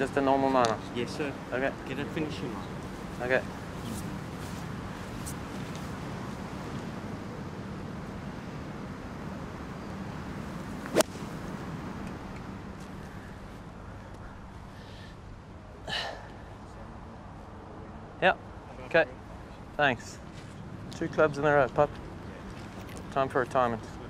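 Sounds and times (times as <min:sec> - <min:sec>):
low outdoor background noise: 0:00.0 - 0:24.0
golf club striking ball: 0:10.8 - 0:11.4.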